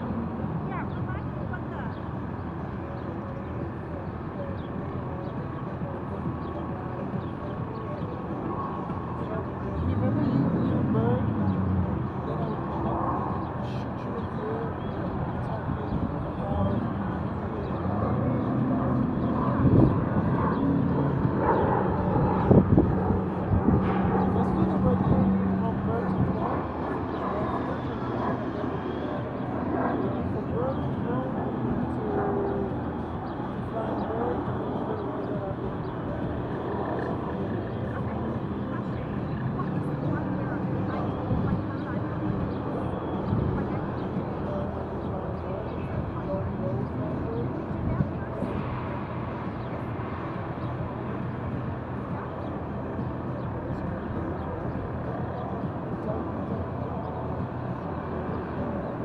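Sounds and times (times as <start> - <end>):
distant voices: 0.0 - 59.0
traffic hum: 0.0 - 59.0.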